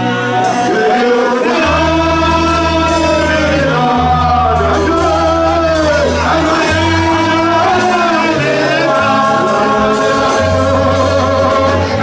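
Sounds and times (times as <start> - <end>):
gospel singing: 0.0 - 12.0
held keyboard chords: 0.0 - 12.0.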